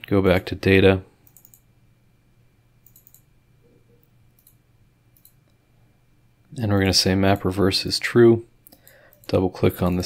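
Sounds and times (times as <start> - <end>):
computer mouse clicks: 1.2 - 1.7, 2.8 - 3.3, 3.9 - 5.6, 8.6 - 10.0.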